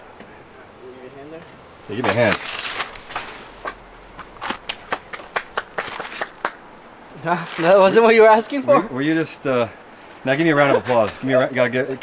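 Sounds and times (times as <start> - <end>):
person clapping hands: 4.5 - 6.6.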